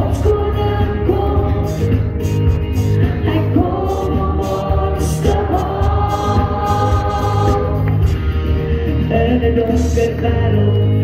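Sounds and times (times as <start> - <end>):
choir-like backing: 0.0 - 10.9
steady bass: 0.0 - 11.0.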